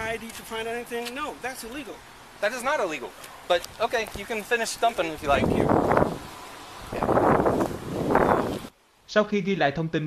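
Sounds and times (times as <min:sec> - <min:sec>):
wind buffeting microphone: 0:03.6 - 0:08.7.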